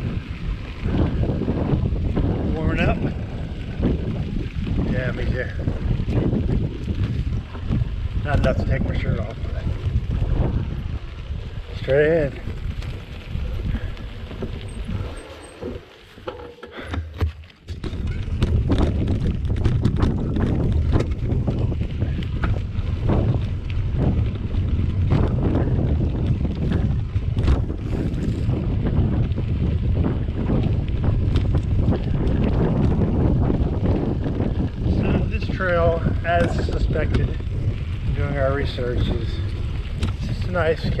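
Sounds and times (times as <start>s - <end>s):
bike rattles and knocks: 0.0s - 41.0s
bike tyre rumble: 0.0s - 41.0s
wind buffeting microphone: 0.0s - 41.0s.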